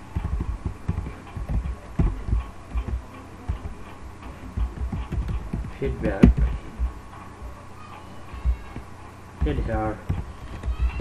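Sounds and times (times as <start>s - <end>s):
low electrical hum: 0.0s - 11.0s
soft low thuds: 0.0s - 11.0s.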